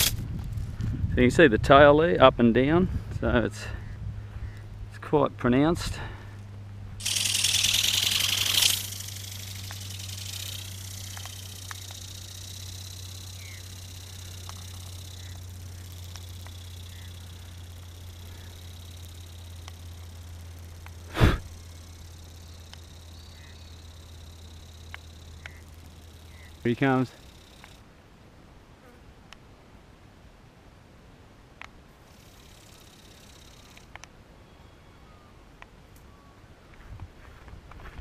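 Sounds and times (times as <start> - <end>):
steady low hum: 0.0 - 29.0, 31.6 - 38.0
loud rushing hiss: 7.0 - 19.6, 20.4 - 24.5.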